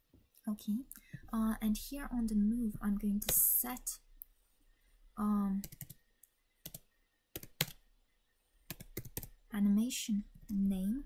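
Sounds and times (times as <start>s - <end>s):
computer keyboard clicks: 5.6s - 6.0s, 8.7s - 9.3s.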